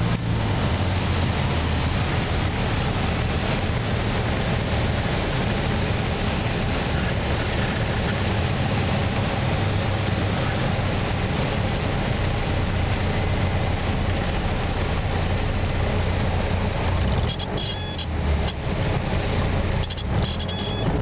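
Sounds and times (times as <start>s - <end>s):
propeller aircraft engine drone: 0.0s - 21.0s
wind rush in cabin: 0.0s - 21.0s
short high-pitched tones: 17.3s - 18.1s, 19.8s - 21.0s.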